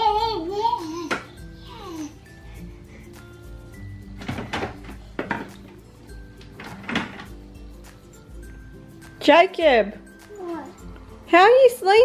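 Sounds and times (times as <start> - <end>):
background music: 0.0 - 12.0
plastic toys knocking: 4.2 - 5.8.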